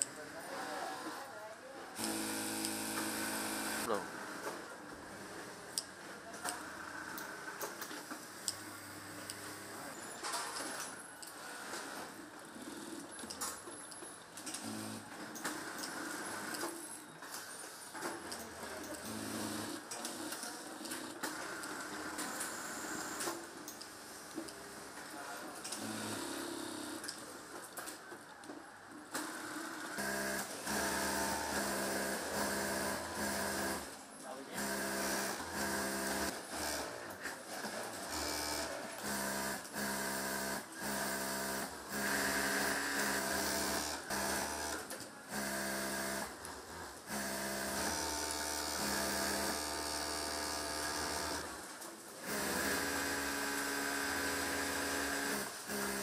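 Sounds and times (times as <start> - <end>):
sewing machines stitching: 2.0 - 4.0, 14.4 - 23.4, 29.3 - 56.0.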